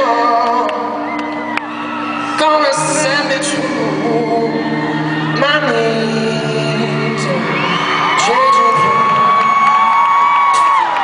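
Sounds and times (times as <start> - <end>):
live rock band music: 0.0 - 11.0
crowd whooping: 0.1 - 11.0.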